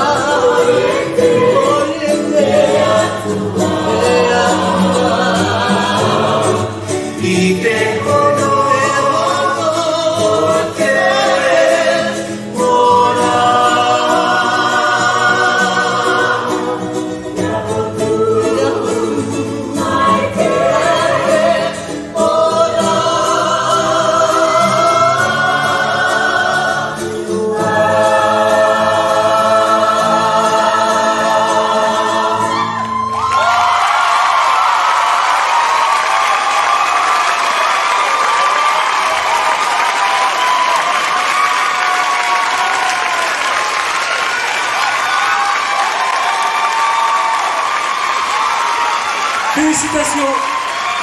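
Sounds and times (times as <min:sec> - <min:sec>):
choir singing in harmony: 0:00.0 - 0:43.8.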